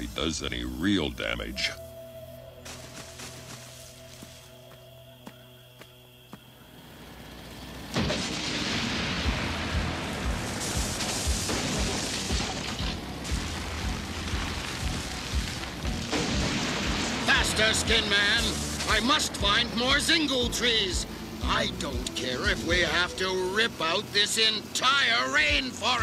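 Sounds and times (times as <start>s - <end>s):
harsh machine noise with low thuds: 7.9s - 20.1s
soft cartoon background music: 9.3s - 26.0s.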